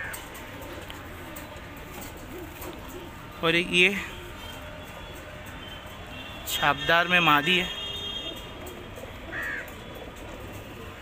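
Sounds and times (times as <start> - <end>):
pigeons cooing softly: 0.0 - 6.2, 8.1 - 11.0.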